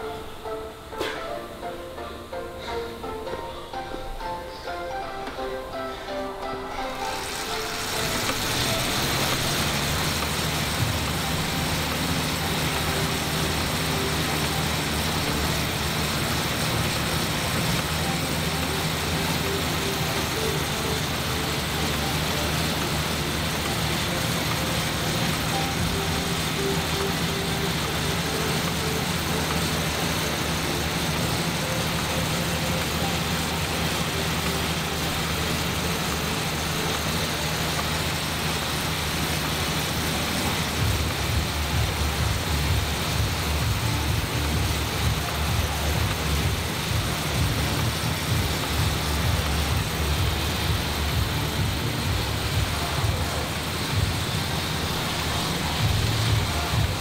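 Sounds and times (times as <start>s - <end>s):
exercise bike fan whooshing: 0.0s - 57.0s.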